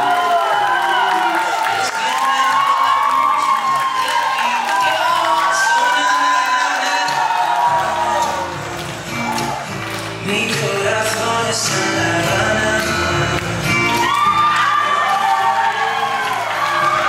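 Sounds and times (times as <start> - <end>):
audience cheering and whooping: 0.0 - 10.0, 13.6 - 17.0
ballroom dance music: 0.0 - 17.0.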